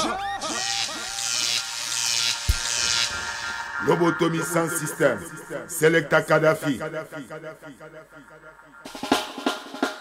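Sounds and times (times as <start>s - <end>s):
echoing spoken jingle: 3.2s - 8.8s
reggae music with drums: 8.8s - 10.0s.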